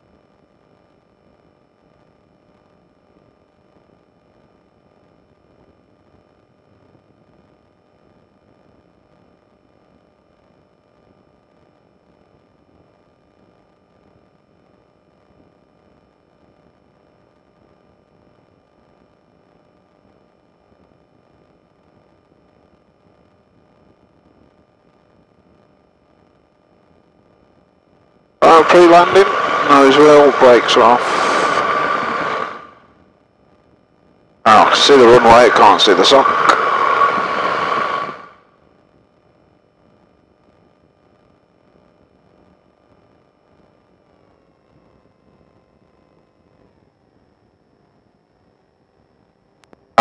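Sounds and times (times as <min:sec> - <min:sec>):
faint steady hiss: 0:00.0 - 0:38.5.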